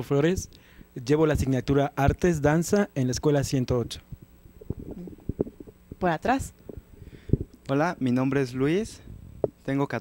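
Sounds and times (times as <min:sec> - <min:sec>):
microphone handling noise: 0:03.7 - 0:07.7, 0:09.0 - 0:09.7.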